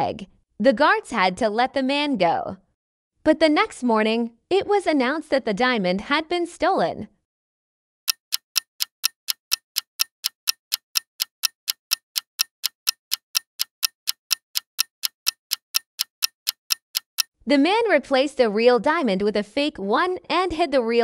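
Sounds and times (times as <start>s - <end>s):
clock ticking: 8.1s - 17.3s.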